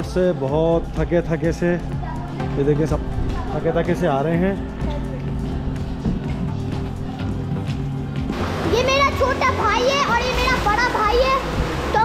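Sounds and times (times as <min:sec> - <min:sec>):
children calling and shouting: 0:08.5 - 0:12.0.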